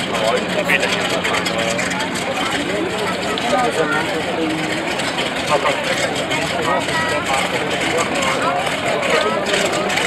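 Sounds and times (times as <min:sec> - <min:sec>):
indistinct voices talking: 0:00.0 - 0:10.0
low engine hum: 0:00.0 - 0:10.0.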